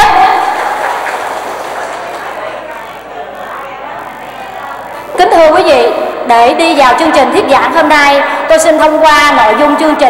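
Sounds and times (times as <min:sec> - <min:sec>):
audience applauding: 0:00.4 - 0:03.6.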